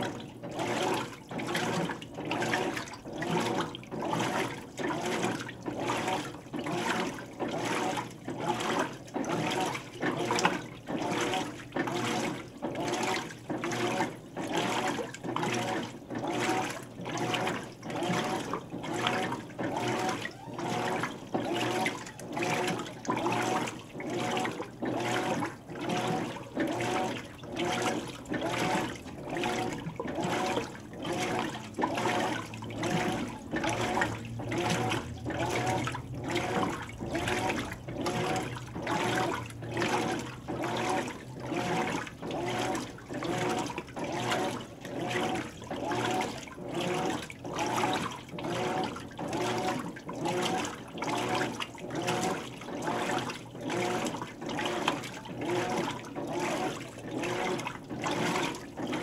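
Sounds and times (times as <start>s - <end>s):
faint motor hum: 0.0s - 59.0s
washing machine water sloshing: 0.0s - 59.0s.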